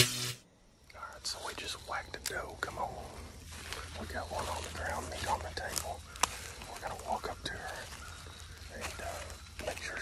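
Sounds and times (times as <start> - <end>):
hushed whispering: 0.9 - 10.0.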